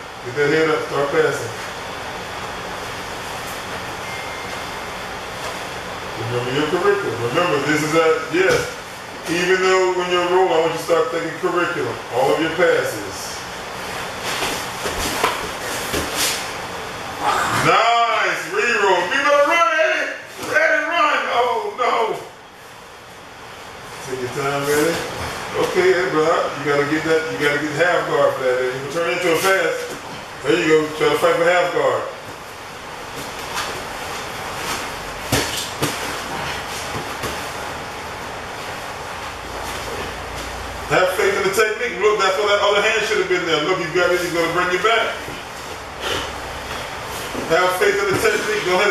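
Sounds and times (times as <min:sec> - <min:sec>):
man speaking: 0:06.2 - 0:13.5, 0:17.6 - 0:22.4, 0:24.0 - 0:32.2, 0:40.9 - 0:45.4, 0:47.4 - 0:48.9
bodies scuffing against mat: 0:13.9 - 0:16.6.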